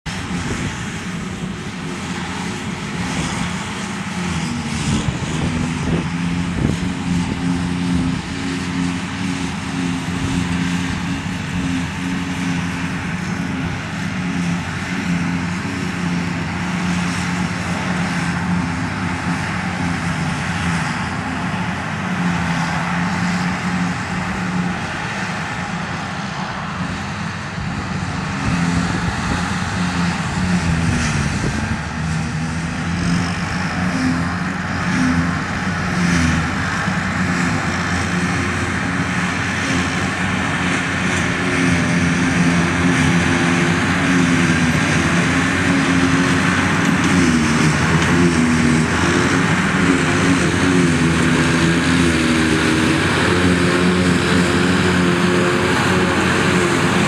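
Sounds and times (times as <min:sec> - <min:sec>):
harvester engine droning under load: 0:00.0 - 0:57.0
tractor engine running: 0:00.0 - 0:57.0.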